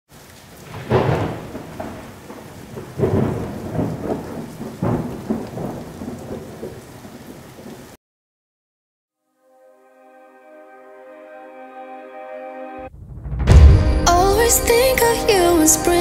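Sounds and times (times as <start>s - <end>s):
steady rain: 0.1s - 8.0s
thunder rolling: 0.6s - 7.7s, 12.9s - 16.0s.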